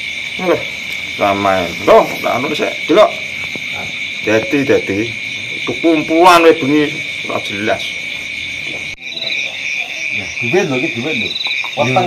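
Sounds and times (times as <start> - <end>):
crickets and insects trilling: 0.0 - 12.0.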